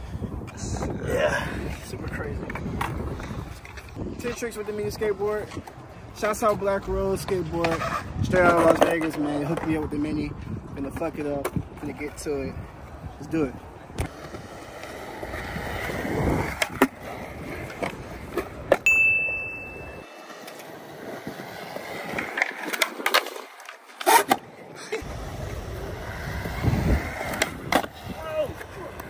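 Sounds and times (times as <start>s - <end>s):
skateboard wheels rolling on concrete: 0.0s - 29.0s
skateboard deck pops and slaps: 14.0s - 14.9s, 22.1s - 24.5s, 27.2s - 29.0s.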